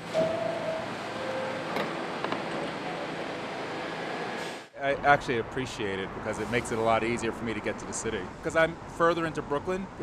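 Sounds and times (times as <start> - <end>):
subway train running on rails: 0.0 - 4.6.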